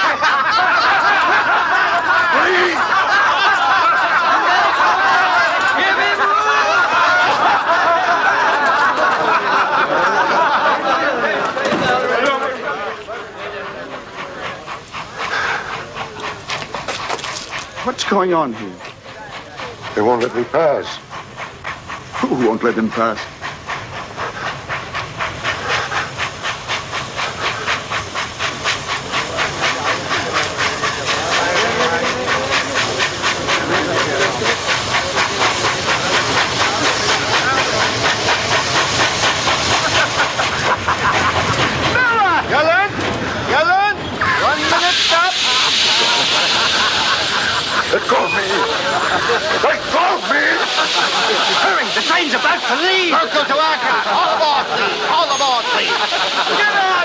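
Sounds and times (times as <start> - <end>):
steam hissing: 0.0 - 57.0
steam train running: 0.0 - 57.0.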